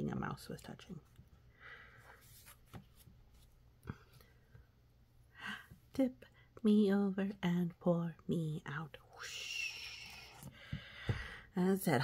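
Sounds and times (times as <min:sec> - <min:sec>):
book page turning: 0:02.1 - 0:03.6.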